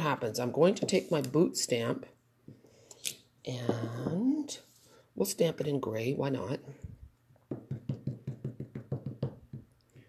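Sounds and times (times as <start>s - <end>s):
ink pad tapping on stamp: 7.5s - 9.6s.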